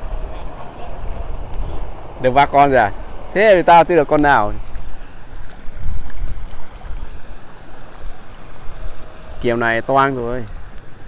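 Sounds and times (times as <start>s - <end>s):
wind rumble on microphone: 0.0s - 3.3s, 4.0s - 11.0s
stream water running: 0.0s - 11.0s.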